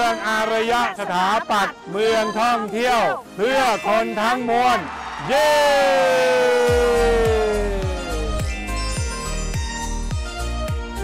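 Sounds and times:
drawn-out cheer: 4.4s - 8.4s
bass-drum beat: 6.7s - 10.3s.

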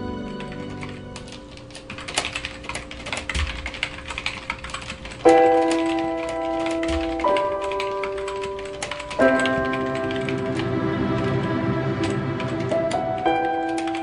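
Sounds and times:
rapid keyboard typing: 0.3s - 14.0s
sustained music chords: 5.3s - 14.0s.

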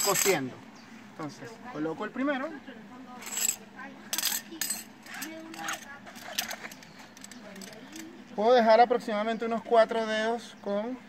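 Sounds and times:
webbing scraping and clicking: 4.2s - 8.2s.

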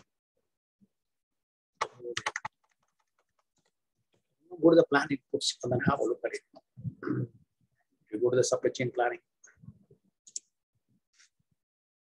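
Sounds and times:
computer keyboard typing: 1.8s - 3.7s.

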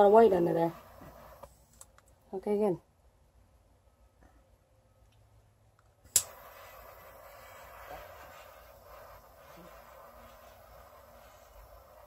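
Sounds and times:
torch flame hissing: 0.0s - 1.8s, 6.1s - 12.0s
butane torch igniting click: 0.0s - 2.1s, 6.0s - 12.0s.

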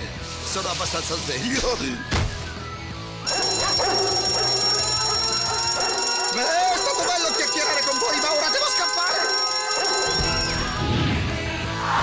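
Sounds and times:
dogs barking and whining: 3.3s - 6.5s
cartoon alarm ringing: 3.3s - 10.8s.

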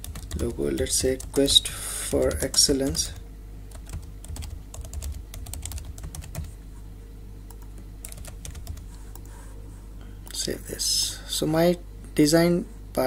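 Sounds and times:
computer keyboard typing: 0.0s - 1.6s, 2.2s - 6.6s, 7.5s - 9.4s
steady low hum: 0.0s - 13.0s.

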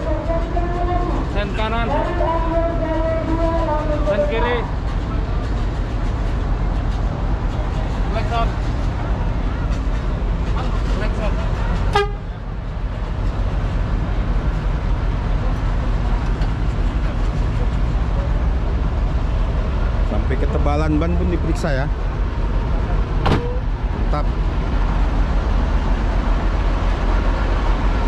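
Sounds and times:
diesel bus engine idling: 0.0s - 28.0s.

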